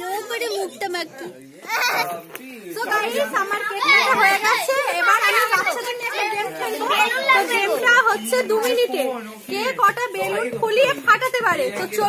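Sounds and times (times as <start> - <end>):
children's voices: 1.6 - 2.2, 2.8 - 9.7.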